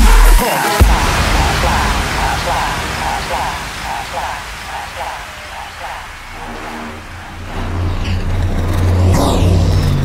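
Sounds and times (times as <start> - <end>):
dubstep electronic music: 0.0 - 8.4
rumbling synth bass: 0.0 - 10.0.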